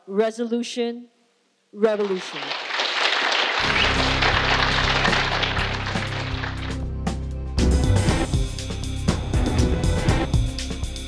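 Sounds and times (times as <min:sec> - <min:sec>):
outro music with low bass: 0:03.6 - 0:11.0.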